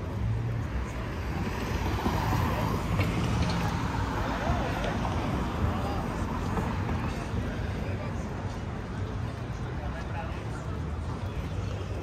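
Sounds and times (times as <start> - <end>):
car traffic rumble: 0.0 - 12.0
people's voices: 0.0 - 12.0.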